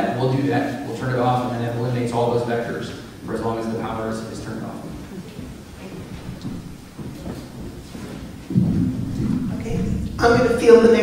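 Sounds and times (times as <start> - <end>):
microphone handling rumble: 4.3 - 11.0.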